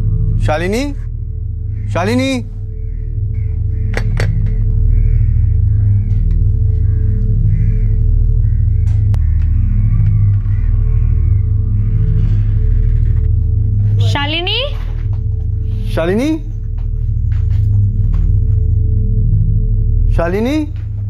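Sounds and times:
suspense drone music: 0.0 - 21.0.

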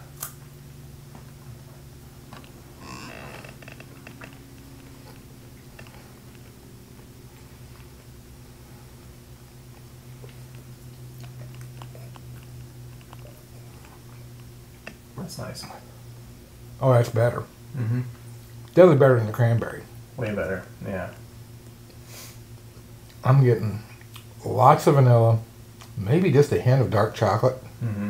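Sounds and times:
low hum: 0.0 - 28.0
people chewing: 1.7 - 15.1
people sipping: 2.3 - 15.0.

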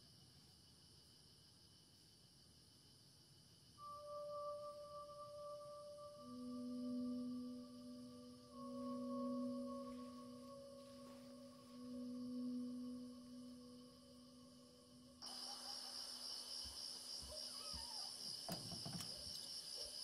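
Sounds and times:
crickets chirping: 0.0 - 20.0
eerie film score drone: 3.8 - 15.8.

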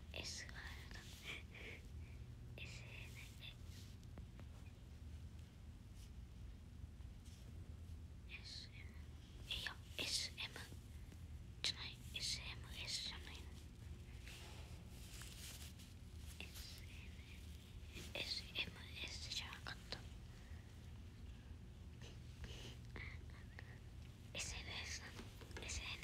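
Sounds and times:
person whispering: 0.0 - 1.7, 2.6 - 3.8, 8.3 - 10.8, 11.6 - 13.7, 16.3 - 20.1, 22.4 - 26.0
steady low hum: 0.0 - 26.0.

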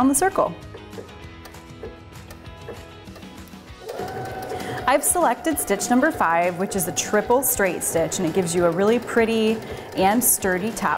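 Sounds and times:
background music: 0.0 - 10.9
sewing machine stitching: 2.6 - 10.9.

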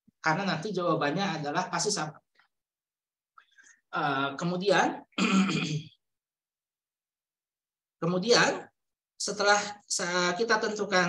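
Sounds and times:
man clearing his throat: 5.2 - 6.0.

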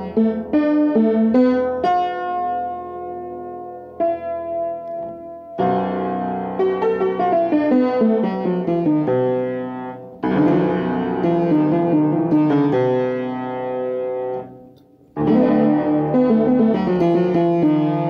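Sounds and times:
upright piano playing: 0.0 - 18.0.

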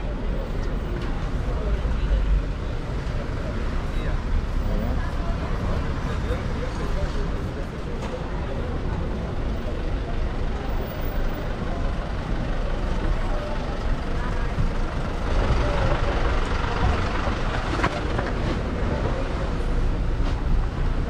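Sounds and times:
truck engine rumbling: 0.0 - 21.0.

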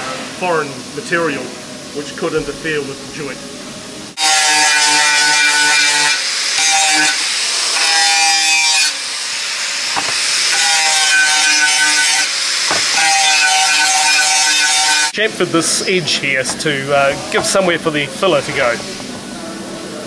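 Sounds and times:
angle grinder sanding pipe: 4.2 - 15.2.

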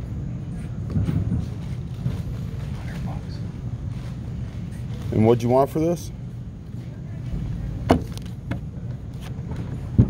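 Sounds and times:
indoor hall background rumble: 0.0 - 10.0.

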